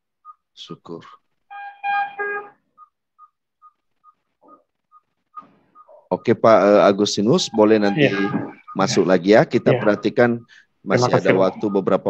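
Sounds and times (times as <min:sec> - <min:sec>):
monitor alarm tone: 0:01.5 - 0:03.3, 0:07.3 - 0:12.0
short high beeps: 0:07.5 - 0:10.2, 0:10.9 - 0:12.0.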